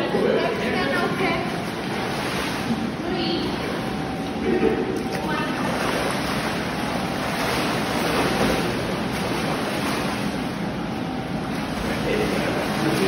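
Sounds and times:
swimmer splashing water: 0.0s - 13.0s.

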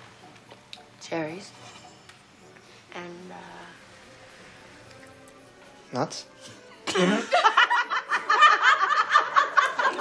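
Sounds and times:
women laughing: 6.9s - 10.0s.

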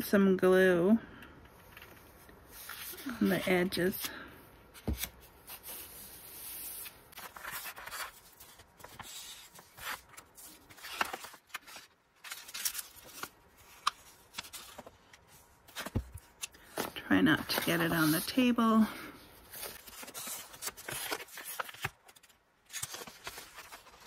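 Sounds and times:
paper rustling and sliding: 4.8s - 18.4s, 19.4s - 24.0s.

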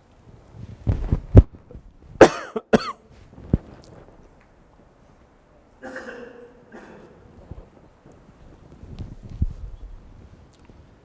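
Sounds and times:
person coughing: 2.2s - 3.1s, 5.8s - 7.3s.

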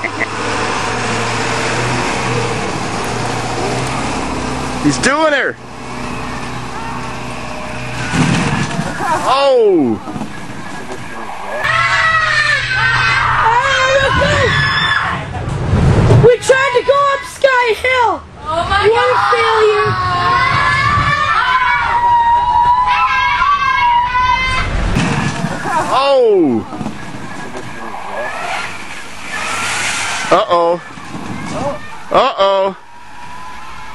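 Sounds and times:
bus engine working hard: 0.0s - 11.7s, 24.7s - 33.9s
wheels churning dirt: 0.0s - 17.4s, 18.4s - 33.9s.

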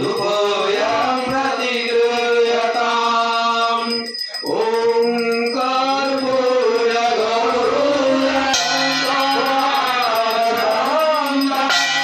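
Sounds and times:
devotional mantra chanting: 0.0s - 12.0s.

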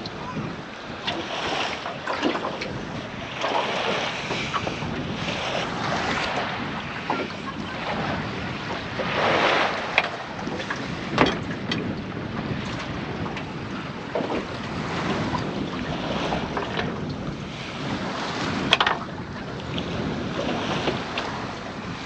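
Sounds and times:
water lapping against boat hull: 0.0s - 22.0s
wind buffeting microphone: 0.0s - 22.0s.

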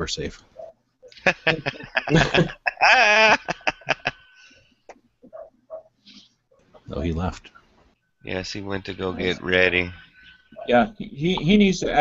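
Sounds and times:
man laughing: 1.2s - 4.4s.

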